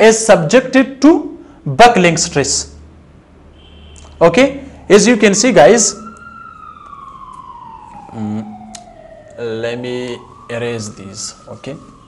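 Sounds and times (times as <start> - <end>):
faint siren wail: 2.7 - 12.0.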